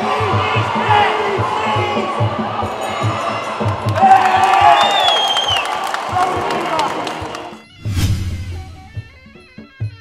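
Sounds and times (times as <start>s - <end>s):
crowd cheering and shouting: 0.0s - 7.6s.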